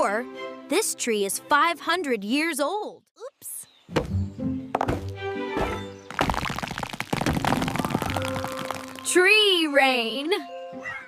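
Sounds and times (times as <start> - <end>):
acorns clattering onto ground: 6.1 - 9.2.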